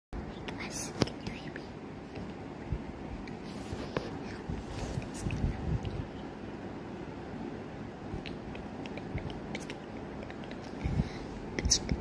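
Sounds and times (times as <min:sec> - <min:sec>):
girl whispering: 0:00.2 - 0:01.8, 0:03.3 - 0:06.1, 0:08.8 - 0:12.0.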